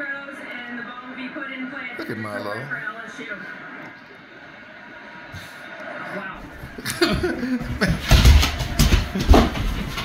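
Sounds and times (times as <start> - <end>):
dog scrambling on hardwood floor: 6.6 - 10.0
person laughing: 6.8 - 8.2.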